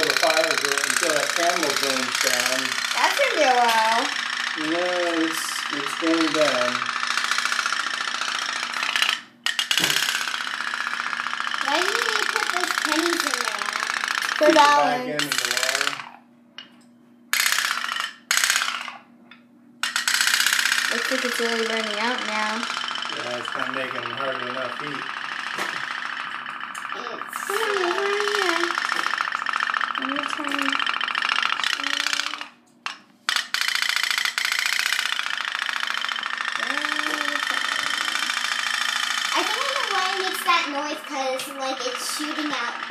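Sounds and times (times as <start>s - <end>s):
toy boat engine popping: 0.0s - 16.2s, 17.4s - 19.0s, 19.8s - 42.9s.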